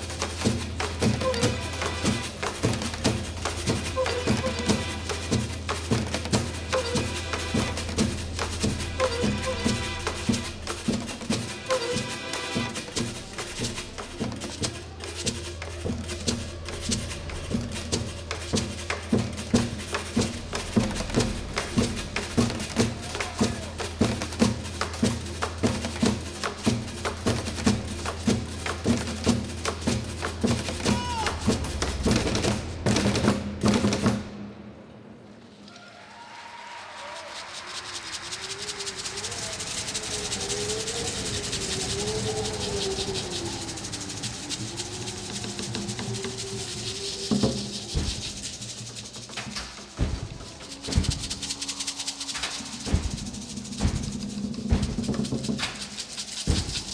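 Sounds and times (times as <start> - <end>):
drumsticks beating plastic drums: 0.0 - 34.2, 37.8 - 56.9.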